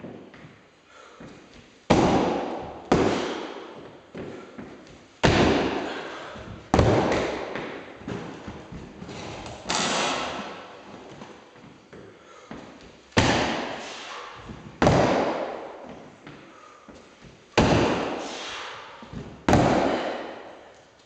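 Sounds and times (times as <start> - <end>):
feet thudding on wooden box: 1.2 - 13.8, 14.4 - 18.3, 19.0 - 20.3.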